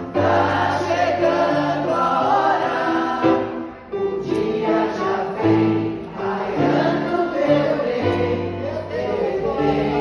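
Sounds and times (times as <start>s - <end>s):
grand piano: 0.0s - 10.0s
voices singing along: 0.0s - 10.0s.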